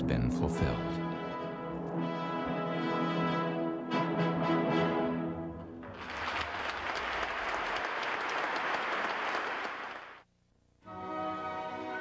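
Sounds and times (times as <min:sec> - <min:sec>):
audience applauding: 0:05.8 - 0:10.2.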